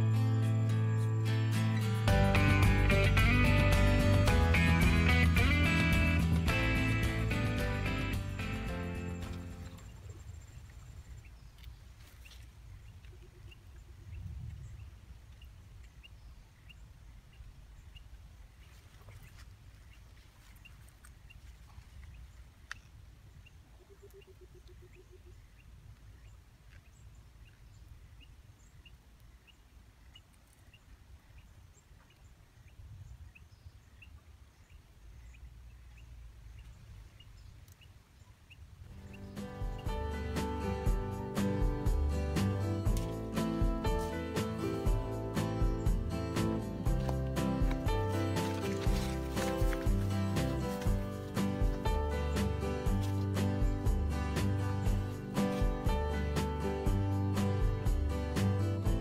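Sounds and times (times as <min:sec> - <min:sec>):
plucked guitar music: 0:00.0 - 0:09.8, 0:39.0 - 0:59.0.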